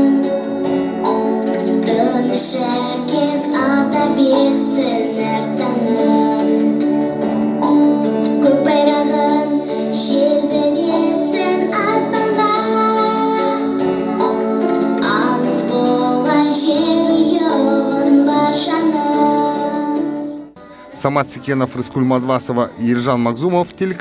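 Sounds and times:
girl singing into microphone: 0:00.0 - 0:21.0
musical accompaniment: 0:00.0 - 0:24.0.

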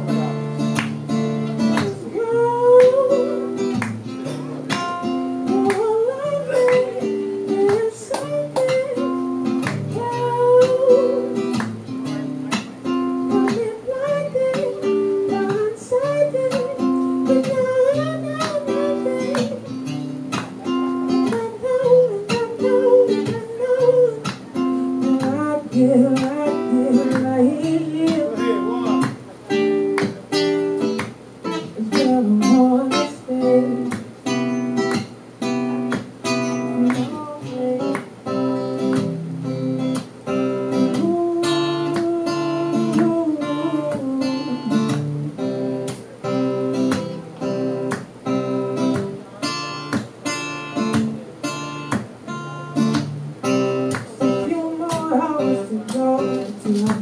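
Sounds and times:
acoustic guitar strumming: 0:00.0 - 0:57.0
man singing: 0:01.6 - 0:04.6, 0:05.5 - 0:09.2, 0:09.8 - 0:11.5, 0:21.2 - 0:29.1, 0:31.7 - 0:33.9, 0:40.8 - 0:45.1, 0:54.1 - 0:57.0.

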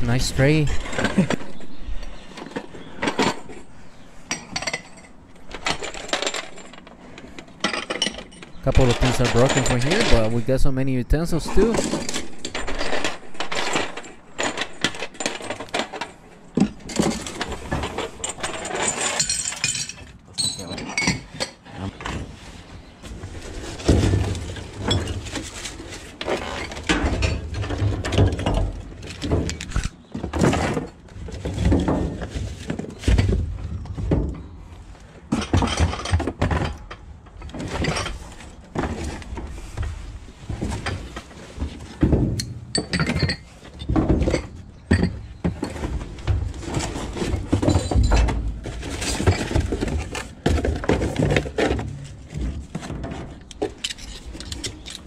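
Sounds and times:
knocks and clatters: 0:04.3 - 0:10.6, 0:11.4 - 0:22.4, 0:35.3 - 0:55.0
cardboard and plastic rustling: 0:21.8 - 0:42.3, 0:45.5 - 0:55.0.

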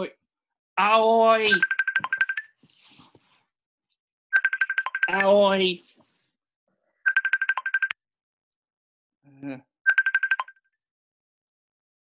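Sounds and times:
phone ringtone trilling: 0:01.4 - 0:02.5, 0:04.4 - 0:05.3, 0:07.1 - 0:07.9, 0:09.9 - 0:10.6.

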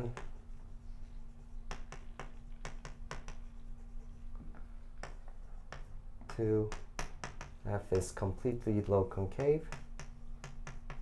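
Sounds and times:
chalk tapping on blackboard: 0:00.0 - 0:11.0
low room hum: 0:00.0 - 0:11.0.

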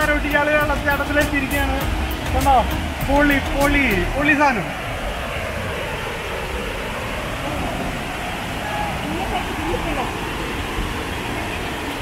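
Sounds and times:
waterfall rushing: 0:00.0 - 0:12.0.

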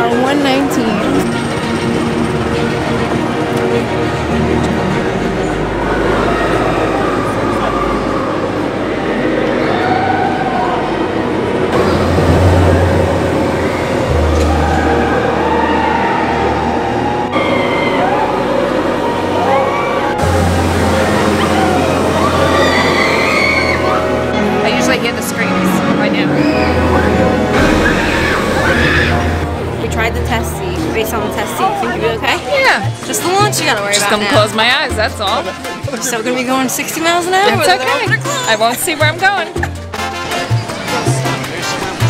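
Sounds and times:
roller coaster rumbling on track: 0:00.0 - 0:42.0
riders screaming: 0:13.4 - 0:24.3, 0:26.3 - 0:29.5.

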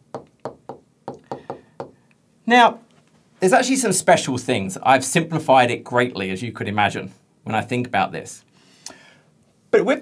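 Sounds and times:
stylus tapping on glass screen: 0:00.1 - 0:02.0.

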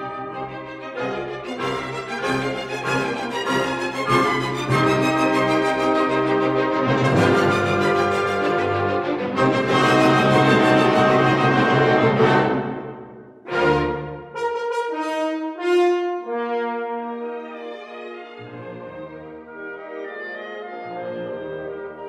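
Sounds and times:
orchestral music led by brass: 0:00.0 - 0:22.0.

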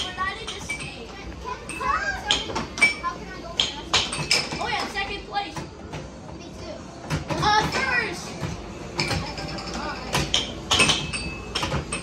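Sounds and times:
children's voices: 0:00.0 - 0:05.7.

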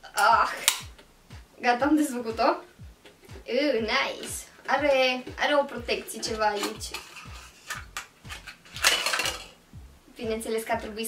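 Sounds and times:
background music with steady beat: 0:00.0 - 0:11.0
tinplate can clicking and clinking: 0:05.4 - 0:09.6.

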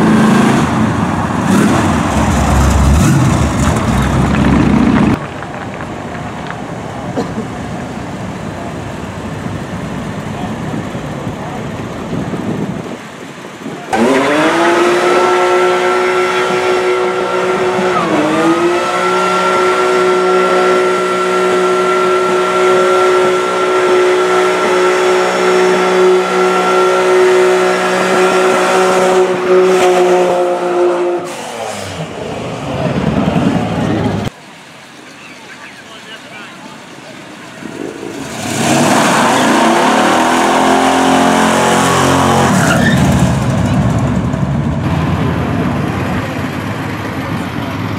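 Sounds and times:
car engine revving high: 0:00.0 - 0:05.2, 0:13.9 - 0:32.4, 0:37.5 - 0:46.6
car revving and accelerating away: 0:00.0 - 0:05.3, 0:13.8 - 0:34.3, 0:37.4 - 0:47.9
tyres spinning and squealing: 0:35.1 - 0:44.0.

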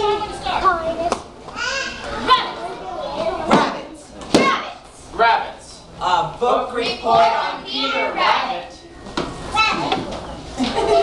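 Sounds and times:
children speaking: 0:00.0 - 0:05.0, 0:06.7 - 0:11.0.

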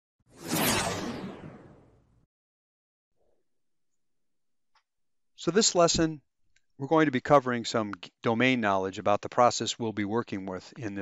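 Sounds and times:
whoosh sound effect: 0:00.3 - 0:02.0.

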